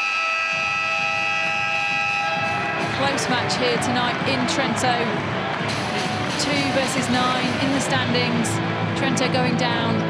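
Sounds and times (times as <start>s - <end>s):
arena horn long electronic tone: 0.0s - 2.9s.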